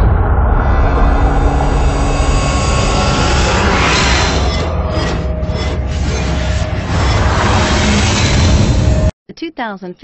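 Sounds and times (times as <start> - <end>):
loud rushing rumble: 0.0 - 9.1.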